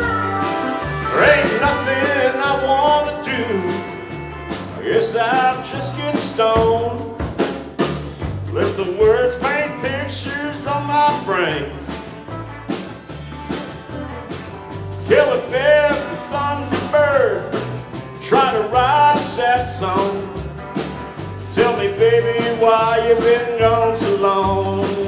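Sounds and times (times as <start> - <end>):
drums steady beat: 0.0 - 25.0
sliding lead melody: 0.0 - 25.0
walking bass line: 0.0 - 25.0.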